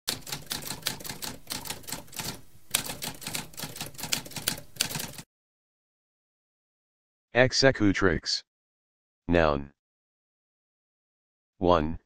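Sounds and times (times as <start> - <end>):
typewriter keys striking: 0.1 - 5.2.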